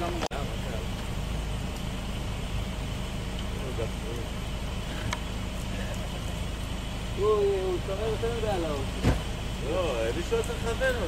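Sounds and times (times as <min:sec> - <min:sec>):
engine low rumble: 0:00.0 - 0:11.0.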